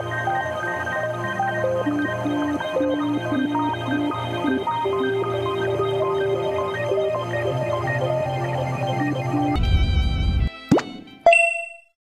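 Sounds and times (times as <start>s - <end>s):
background music: 0.0s - 11.7s
bright chime: 11.3s - 12.0s.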